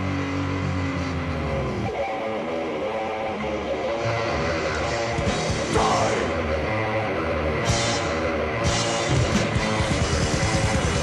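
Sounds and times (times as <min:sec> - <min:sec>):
death metal band playing: 0:00.0 - 0:11.0.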